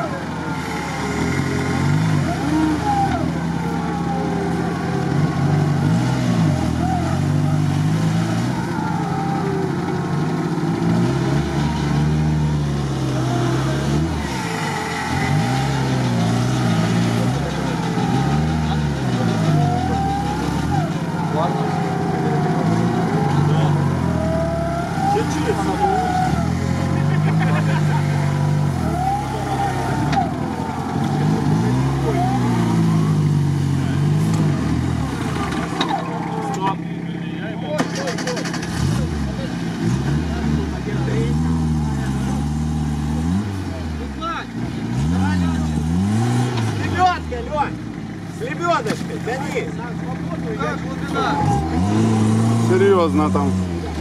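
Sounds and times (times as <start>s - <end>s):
engine revving: 0.0s - 54.0s
vehicle grinding through mud: 0.0s - 54.0s.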